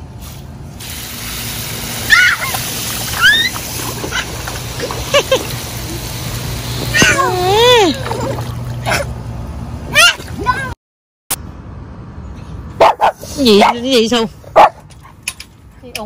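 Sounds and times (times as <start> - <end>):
water splashing in pool: 0.9 - 9.2
child squealing: 2.1 - 4.3, 6.9 - 8.1, 9.9 - 10.7.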